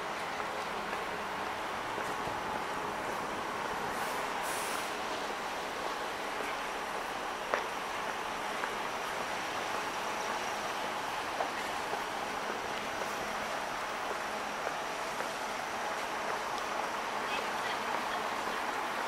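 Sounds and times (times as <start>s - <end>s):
road traffic hum: 0.0s - 19.0s
short high hiss: 3.9s - 5.0s.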